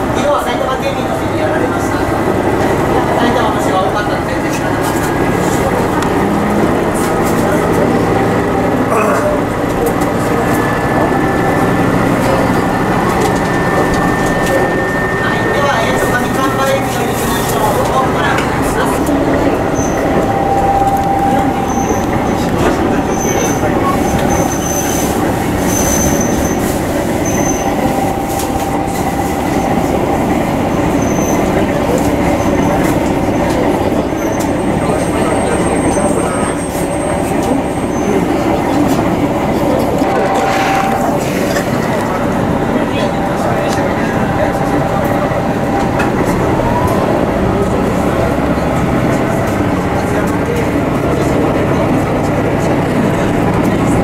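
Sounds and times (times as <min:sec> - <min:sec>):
railcar engine and wheels: 0:00.0 - 0:54.0.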